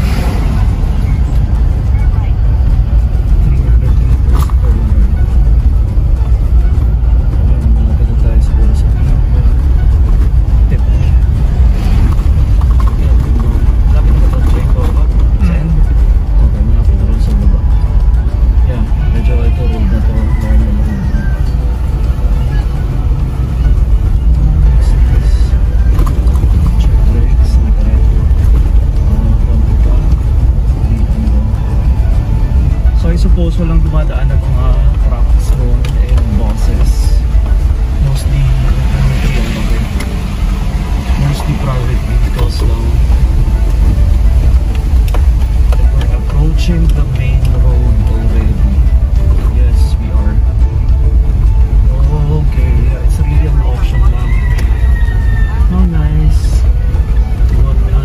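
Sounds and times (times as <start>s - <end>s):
car engine and tyres rumbling: 0.0s - 58.0s
faint voices: 0.0s - 58.0s
music: 0.0s - 58.0s.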